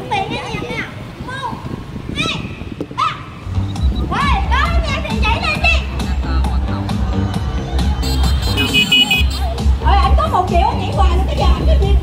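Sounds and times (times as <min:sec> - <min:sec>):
children's high voices: 0:00.0 - 0:03.4, 0:04.0 - 0:06.0
music with heavy bass beat: 0:05.1 - 0:11.3.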